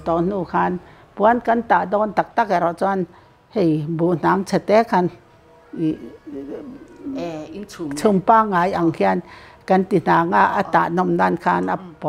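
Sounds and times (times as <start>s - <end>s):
people talking: 5.8s - 12.0s.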